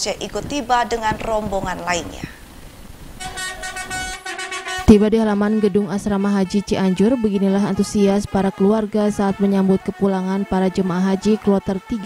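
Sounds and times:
bus horn blowing: 3.2 - 12.0.

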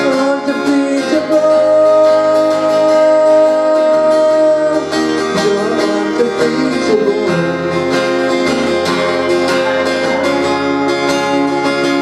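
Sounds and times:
person singing: 0.0 - 8.3
strummed acoustic guitar: 0.0 - 12.0.

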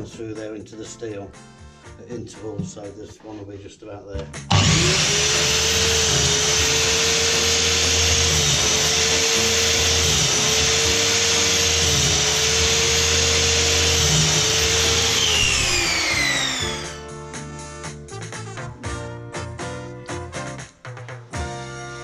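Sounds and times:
electric mitre saw cutting wood: 4.5 - 17.1.

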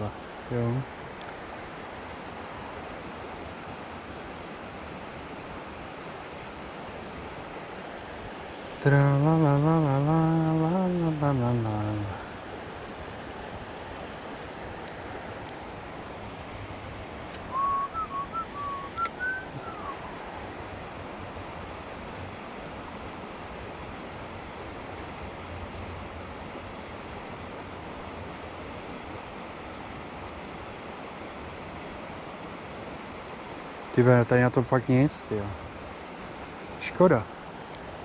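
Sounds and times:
river water rushing: 0.0 - 38.0
person whistling: 17.4 - 20.2.

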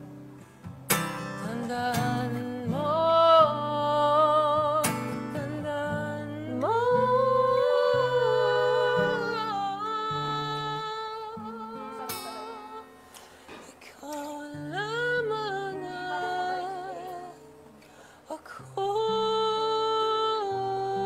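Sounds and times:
acoustic guitar playing: 0.0 - 21.0
voice humming with vibrato: 6.5 - 12.9.

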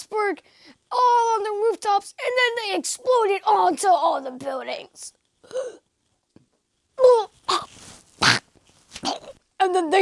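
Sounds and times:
boy making choking noises: 5.4 - 5.8, 7.0 - 9.4
boy coughing: 9.0 - 9.4.

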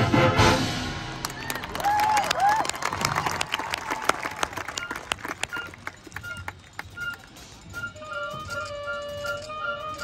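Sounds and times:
scattered claps and clicks: 1.2 - 7.4.

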